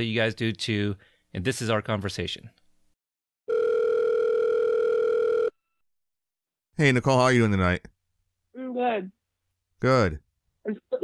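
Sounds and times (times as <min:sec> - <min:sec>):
telephone ringback tone: 0:03.5 - 0:05.6.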